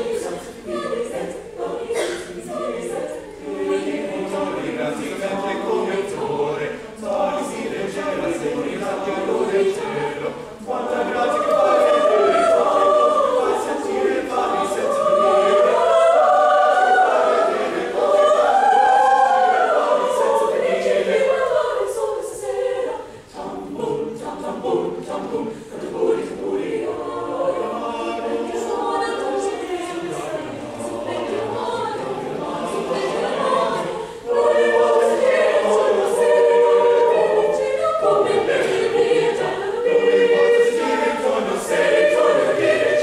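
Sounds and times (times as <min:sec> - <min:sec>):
choir singing in parts: 0:00.0 - 0:43.0.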